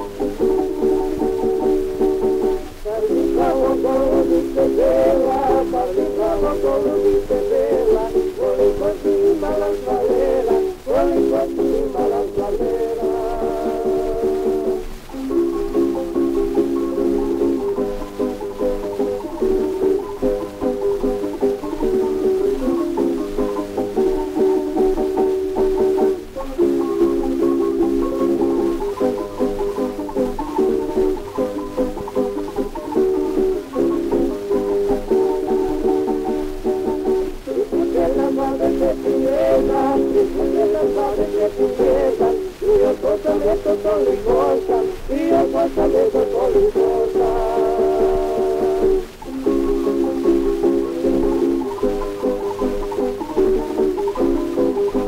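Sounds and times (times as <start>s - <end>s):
plucked string orchestra: 0.0s - 55.0s
record surface hiss: 0.0s - 55.0s.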